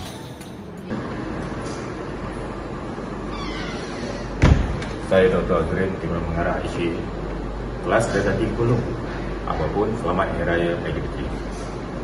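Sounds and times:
steady room hum: 0.0 - 12.0
door squeak: 3.3 - 4.7
door closing thump: 4.4 - 5.0.

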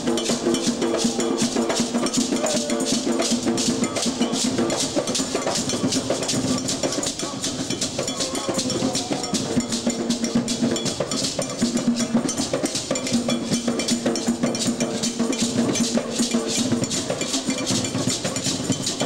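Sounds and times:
hand drums playing rhythm: 0.0 - 19.0
struck bell pattern: 0.0 - 19.0.

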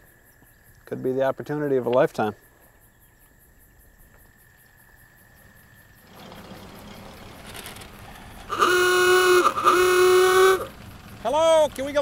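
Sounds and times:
crickets chirping: 0.0 - 12.0
car engine rumble and road noise: 5.4 - 12.0.

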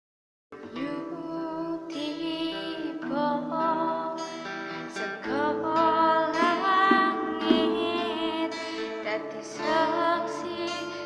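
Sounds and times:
acoustic guitars: 0.6 - 11.0
woman singing: 0.6 - 11.0.

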